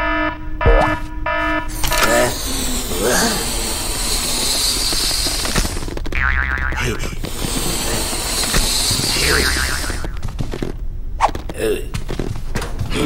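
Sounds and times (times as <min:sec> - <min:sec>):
jet engine hiss: 0:01.7 - 0:05.9, 0:07.2 - 0:10.1.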